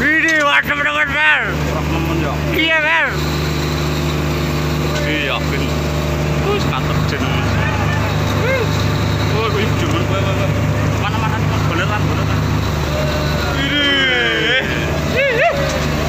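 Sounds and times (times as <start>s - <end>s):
boat engine running: 0.0s - 16.0s
people calling out: 6.3s - 16.0s.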